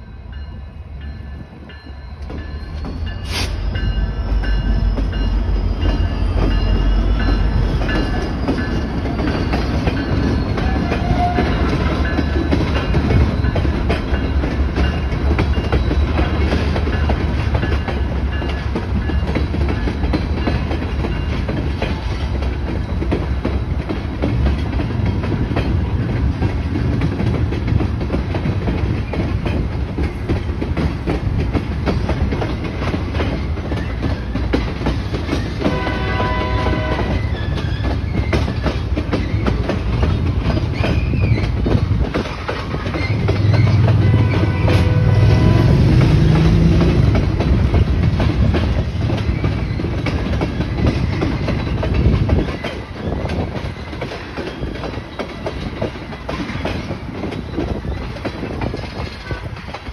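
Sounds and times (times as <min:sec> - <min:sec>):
freight train rumbling: 0:00.0 - 0:59.9
rapid train wheel clicks: 0:05.9 - 0:35.8, 0:37.0 - 0:45.0, 0:45.7 - 0:59.9.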